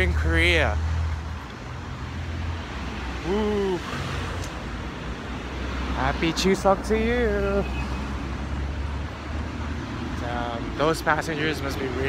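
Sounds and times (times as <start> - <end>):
car and bus engines rumbling: 0.0 - 12.0
roadway hum: 0.0 - 12.0.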